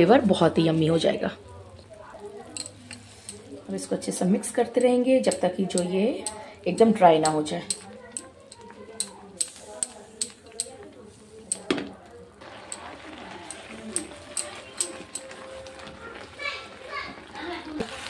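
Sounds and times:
soft sizzle from pan: 0.0s - 18.0s
wooden spatula scraping a pan: 2.7s - 3.5s.

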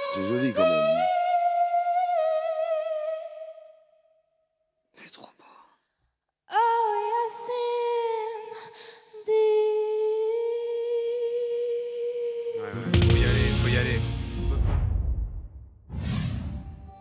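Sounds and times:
woman humming a long note: 0.2s - 1.2s
loud deep whoosh: 13.2s - 16.9s.

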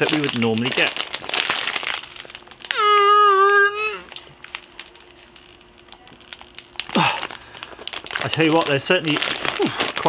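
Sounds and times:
plastic snack bag crinkling: 0.0s - 10.0s.

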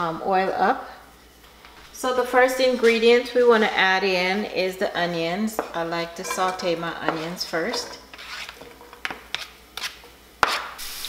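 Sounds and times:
wooden spoon scraping board: 6.3s - 10.7s.

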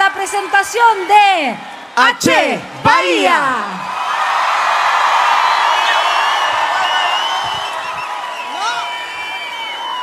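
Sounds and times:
crowd cheering and screaming: 0.0s - 2.0s, 3.6s - 10.0s
whistles: 5.4s - 10.0s.

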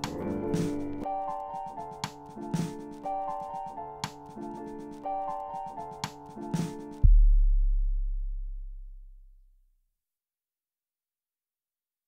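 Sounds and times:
deep bass note: 7.0s - 9.6s.

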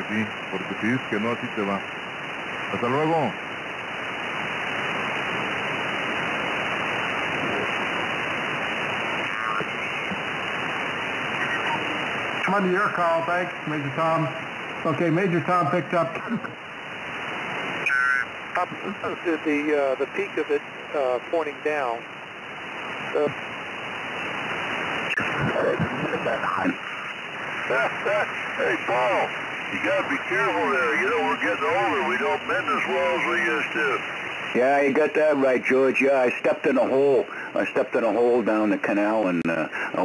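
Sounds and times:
radio static hiss: 0.0s - 40.0s
garbled radio signals: 6.1s - 8.2s, 9.0s - 14.1s, 17.4s - 22.1s, 25.0s - 35.7s.

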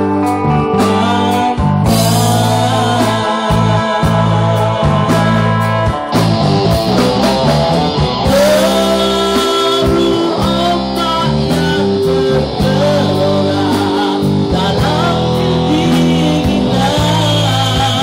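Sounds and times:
man singing into a microphone: 0.0s - 6.2s, 8.2s - 18.0s
drum kit: 0.0s - 18.0s
electric guitar: 0.0s - 18.0s.

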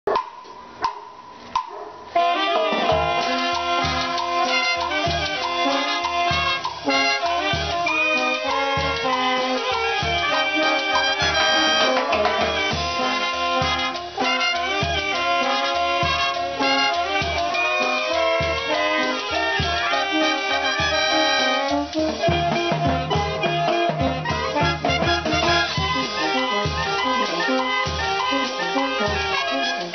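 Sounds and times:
sharp percussive knocks: 0.1s - 1.9s
saxophones and brass melody: 2.0s - 29.9s
bass drum beat: 2.9s - 29.6s.

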